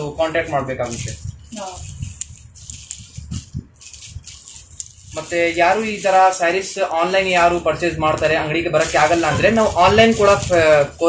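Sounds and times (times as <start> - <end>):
fabric rustling and crinkling: 0.0 - 11.0.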